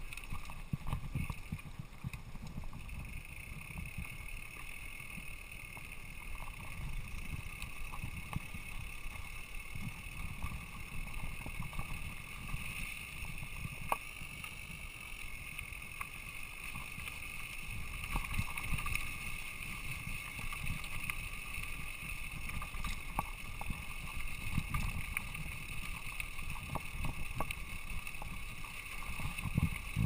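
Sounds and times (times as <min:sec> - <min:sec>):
bike tyres rumbling on trail: 0:00.0 - 0:30.0.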